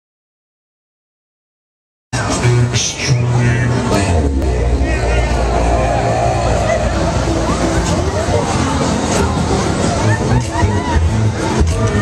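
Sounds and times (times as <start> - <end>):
ride mechanical drone: 2.2 - 12.0
voices: 2.2 - 12.0.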